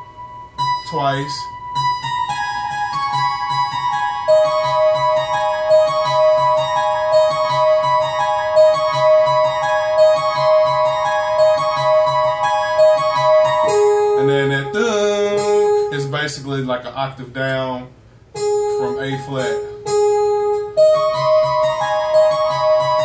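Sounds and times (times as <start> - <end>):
digital piano harpsichord and strings: 0.6 - 14.2, 20.3 - 23.0.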